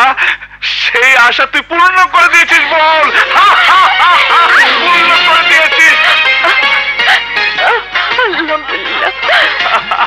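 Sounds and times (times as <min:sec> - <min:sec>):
man laughing loudly: 0:02.3 - 0:07.9, 0:08.8 - 0:10.0.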